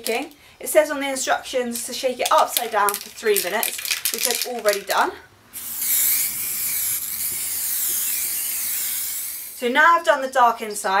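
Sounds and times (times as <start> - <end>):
aerosol spray can hissing: 5.6 - 9.6.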